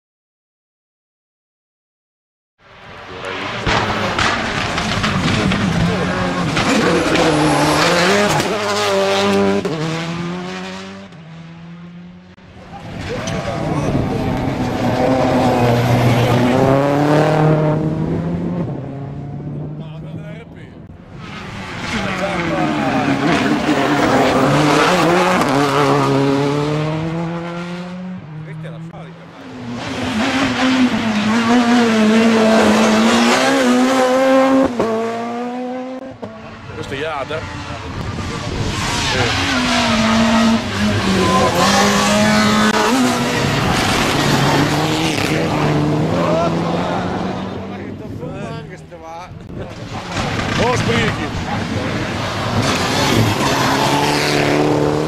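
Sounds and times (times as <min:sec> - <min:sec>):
rally cars revving past: 0:03.2 - 0:20.3, 0:21.1 - 0:55.0.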